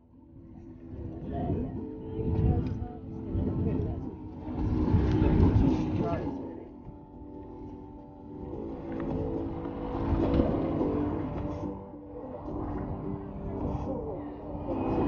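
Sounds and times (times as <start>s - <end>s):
low outdoor rumbling: 0.0s - 15.0s.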